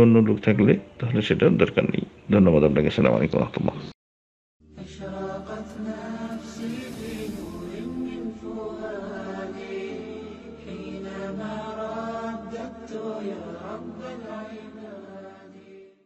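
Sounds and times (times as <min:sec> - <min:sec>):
melodic vocal chanting: 0:04.7 - 0:16.0.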